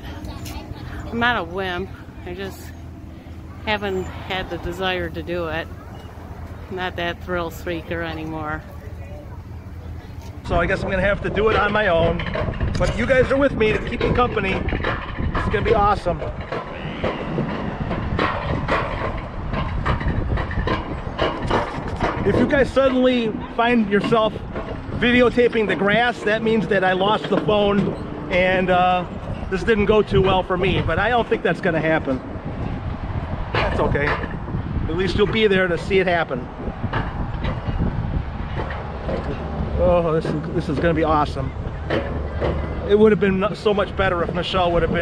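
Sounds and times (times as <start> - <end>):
coaster sled rumbling on rail: 0.0 - 45.0
wheels clacking on rails: 0.0 - 45.0.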